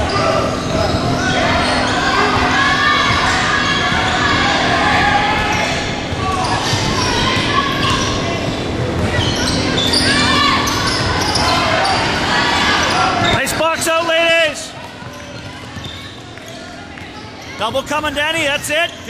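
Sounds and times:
spectators' voices: 0:00.0 - 0:19.0
high shoe squeals: 0:05.3 - 0:13.8, 0:15.0 - 0:16.8.

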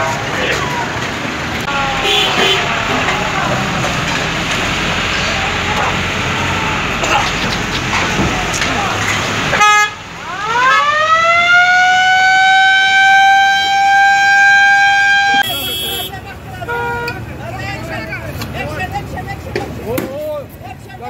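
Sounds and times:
short horn blip: 0:15.3 - 0:16.2.

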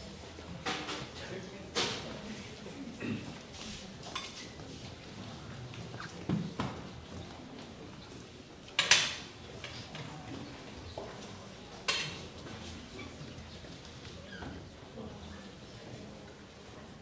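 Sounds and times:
faint voices: 0:00.0 - 0:08.7.

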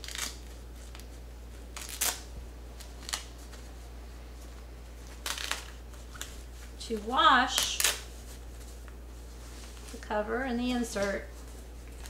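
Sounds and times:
fabric rustling: 0:00.0 - 0:12.0
steady low hum: 0:00.0 - 0:12.0.

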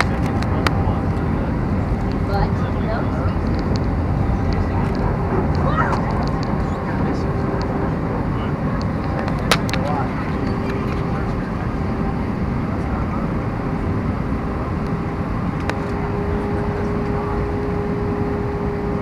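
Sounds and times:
airplane cabin roar: 0:00.0 - 0:19.0.

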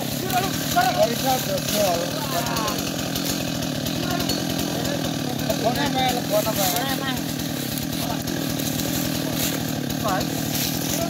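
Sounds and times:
chainsaw idling: 0:00.0 - 0:11.0.

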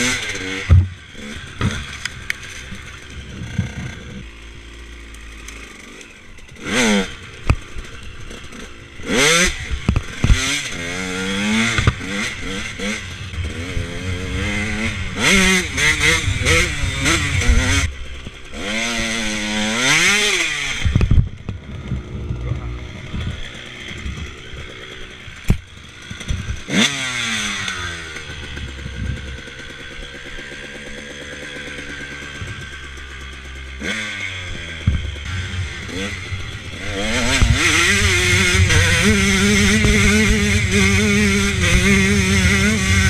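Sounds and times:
dirt bike engine revving: 0:00.0 - 0:43.0.

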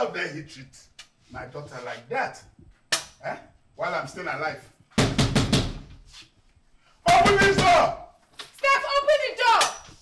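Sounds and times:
hand pounding on door: 0:05.0 - 0:05.9.

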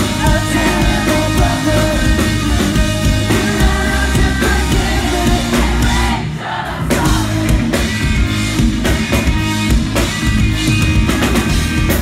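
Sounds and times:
person singing: 0:00.0 - 0:06.0
driving drum beat: 0:00.0 - 0:12.0
pop-punk band playing: 0:00.0 - 0:12.0.

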